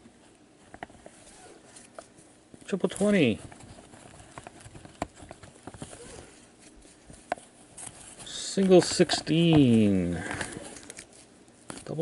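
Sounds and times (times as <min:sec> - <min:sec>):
cards clicking and tapping: 0:02.9 - 0:06.0.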